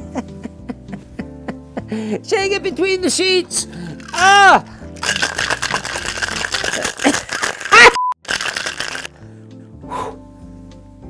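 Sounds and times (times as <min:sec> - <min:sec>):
background music: 0:00.0 - 0:11.0
ice rattling in cocktail shaker: 0:04.0 - 0:09.2.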